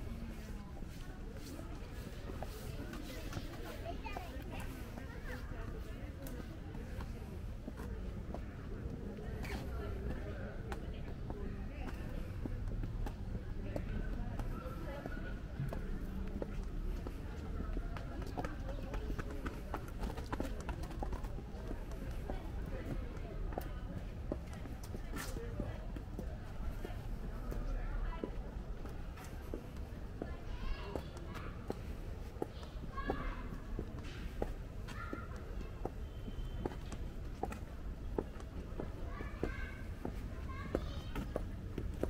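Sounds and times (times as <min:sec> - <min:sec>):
footsteps on paved path: 0:00.0 - 0:42.0
people talking quietly: 0:00.0 - 0:42.0.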